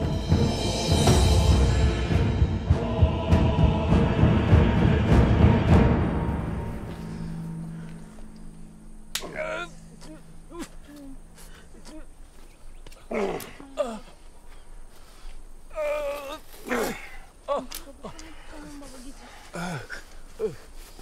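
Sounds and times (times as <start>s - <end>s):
dramatic orchestral music: 0.0s - 9.2s
low held tone: 6.1s - 11.7s
old man groaning in pain: 9.2s - 12.2s, 13.0s - 14.3s, 15.7s - 18.5s, 19.5s - 20.7s.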